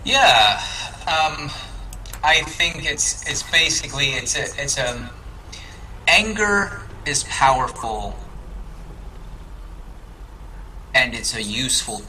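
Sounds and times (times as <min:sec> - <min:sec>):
faint background hiss: 0:00.0 - 0:12.0
steady low hum: 0:00.0 - 0:12.0.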